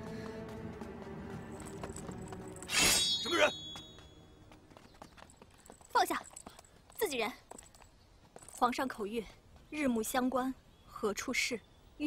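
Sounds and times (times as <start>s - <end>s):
metallic clash ringing: 2.7s - 4.0s.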